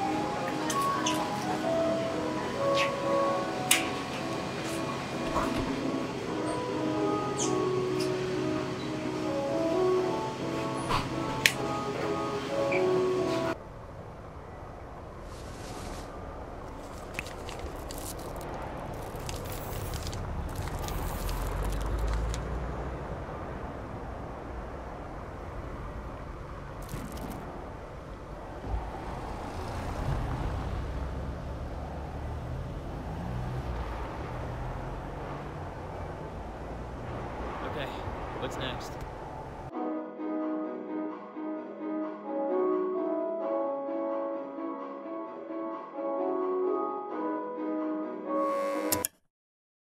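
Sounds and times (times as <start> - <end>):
music: 0.0 - 13.6, 39.7 - 49.1
snack wrapper crinkling: 16.8 - 22.4.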